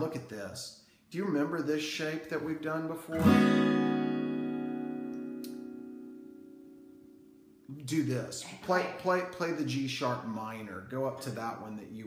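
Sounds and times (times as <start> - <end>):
acoustic guitar chord ringing: 3.1 - 7.6
light click: 5.1 - 5.6.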